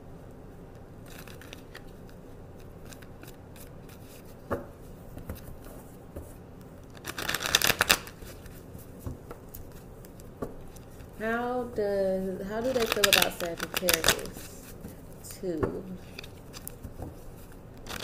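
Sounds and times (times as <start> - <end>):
cards being shuffled: 1.0 - 4.4, 6.9 - 11.2, 12.5 - 15.2, 16.0 - 18.0.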